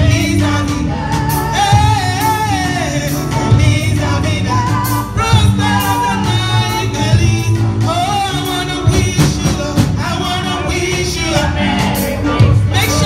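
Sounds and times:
bass line: 0:00.0 - 0:13.0
person singing gospel melody: 0:00.0 - 0:13.0
drum and cymbal hits: 0:04.8 - 0:13.0.

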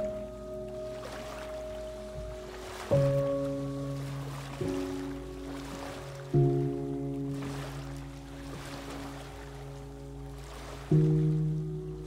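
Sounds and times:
low piano chord ringing: 0:00.0 - 0:12.0
ocean waves: 0:00.0 - 0:12.0.

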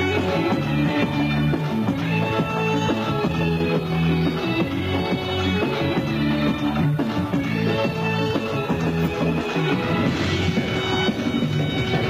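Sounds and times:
amplified band playing pop-folk: 0:00.0 - 0:12.0.

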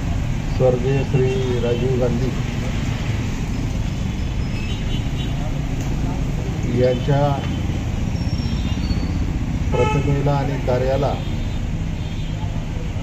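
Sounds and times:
street noise rumble: 0:00.0 - 0:13.0
man speaking into a microphone: 0:00.5 - 0:02.8, 0:06.2 - 0:07.6, 0:09.7 - 0:11.4.

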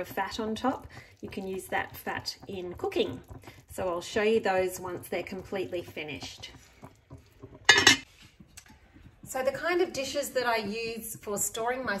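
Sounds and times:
cast-iron pot lid clanking: 0:07.4 - 0:08.1.

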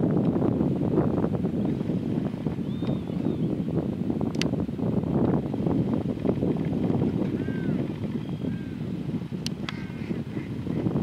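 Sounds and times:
wind buffeting microphone: 0:00.0 - 0:11.0
faint bird call: 0:07.4 - 0:08.8.

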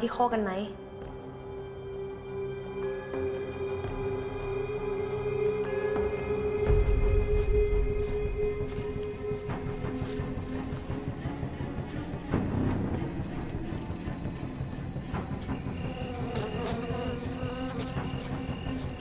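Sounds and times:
low film music: 0:00.0 - 0:19.0
insects buzzing drone: 0:01.0 - 0:19.0
insect chirping: 0:06.5 - 0:19.0.

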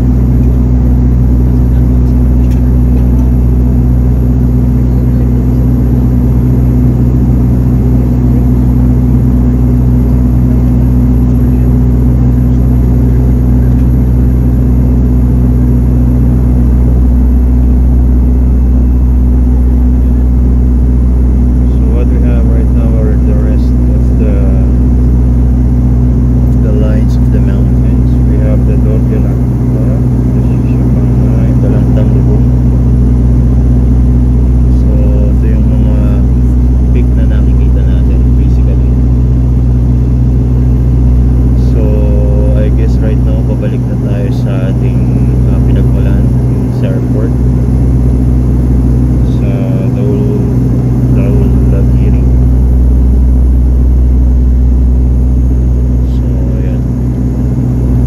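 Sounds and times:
turboprop engines droning in cabin: 0:00.0 - 0:58.0
faint passenger voices: 0:00.1 - 0:07.0, 0:09.5 - 0:15.0, 0:26.5 - 0:32.6, 0:34.7 - 0:39.0, 0:41.6 - 0:47.3, 0:49.2 - 0:50.6, 0:51.2 - 0:52.4, 0:56.0 - 0:56.9.

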